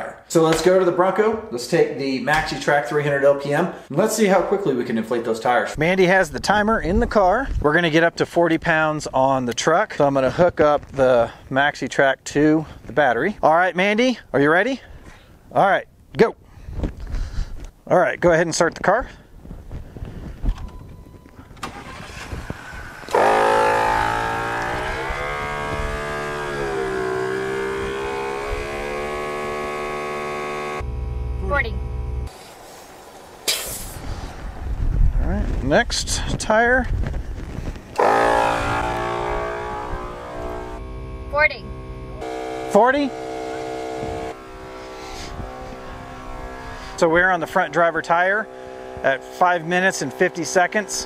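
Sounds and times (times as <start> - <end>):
air compressor running: 21.7 - 32.4, 38.0 - 51.0.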